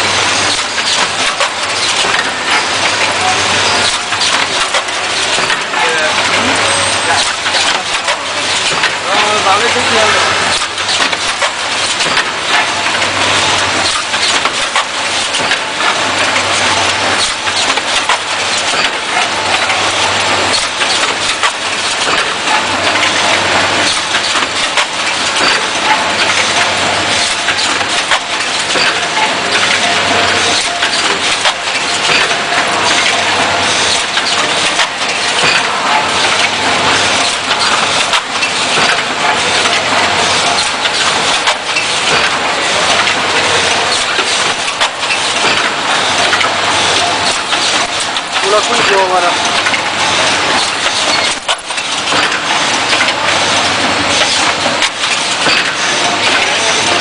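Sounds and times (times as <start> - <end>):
packing machine clicking and clattering: 0.0 - 57.0.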